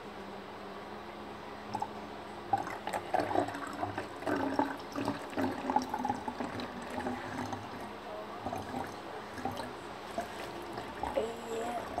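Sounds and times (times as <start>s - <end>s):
liquid gurgling in plastic bottle: 2.5s - 12.0s.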